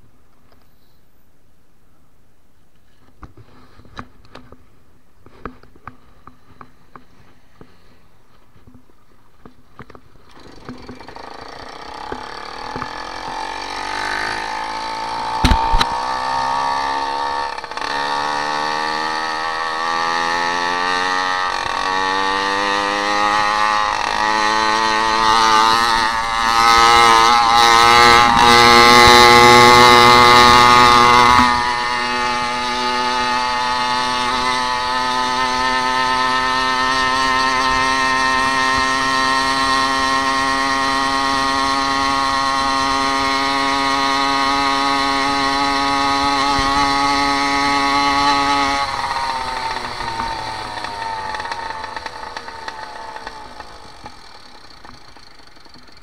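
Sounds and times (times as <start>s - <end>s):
small two-stroke engine running: 9.8s - 56.0s.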